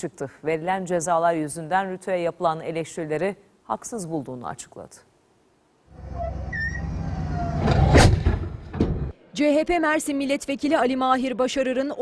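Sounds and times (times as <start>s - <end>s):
large gun firing: 7.6s - 9.1s.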